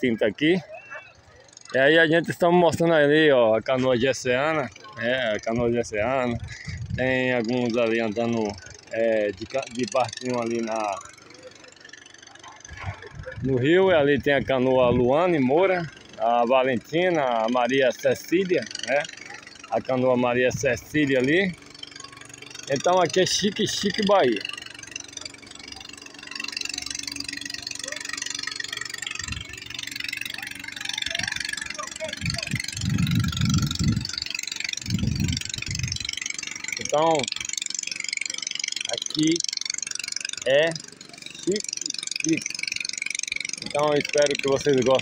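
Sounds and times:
distant boat engine running: 0:00.0 - 0:45.0
outdoor background noise: 0:00.0 - 0:45.0
low rumble bursts: 0:12.7 - 0:15.2.

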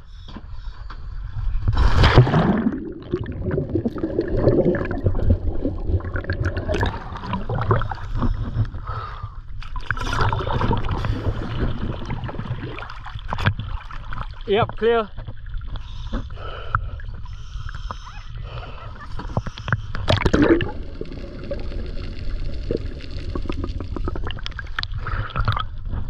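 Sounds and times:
water gurgling and sloshing: 0:01.2 - 0:26.0.

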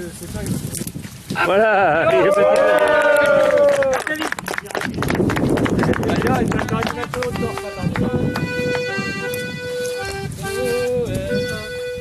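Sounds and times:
group clapping: 0:02.0 - 0:09.3
voices chattering: 0:05.8 - 0:12.0.

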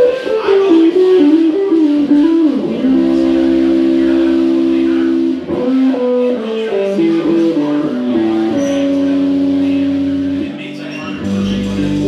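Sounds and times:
blues band with guitar: 0:00.0 - 0:12.0.

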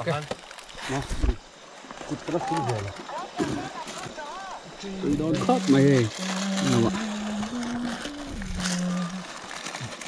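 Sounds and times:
steady background hiss: 0:00.0 - 0:10.0
man humming long notes: 0:06.2 - 0:09.3.

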